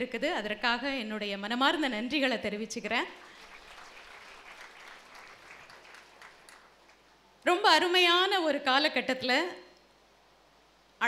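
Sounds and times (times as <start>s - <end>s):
faint audience applause: 3.2s - 7.1s.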